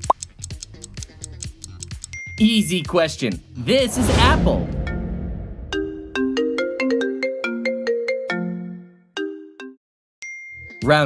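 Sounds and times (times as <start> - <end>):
low rumble: 3.7 - 6.5.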